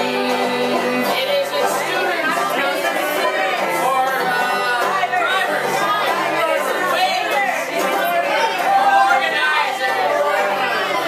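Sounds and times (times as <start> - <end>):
strummed banjo: 0.0 - 11.0
voices singing in chorus: 0.0 - 11.0.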